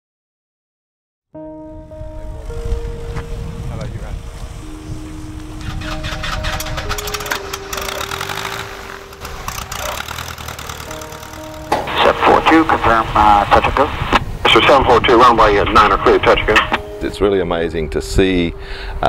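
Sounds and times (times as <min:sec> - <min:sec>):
slow sustained background music: 0:01.4 - 0:19.0
propeller plane engine rumble: 0:05.2 - 0:16.8.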